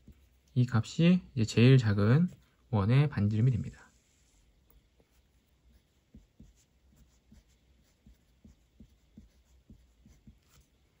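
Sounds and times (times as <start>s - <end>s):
pen scratching on paper: 5.0s - 11.0s.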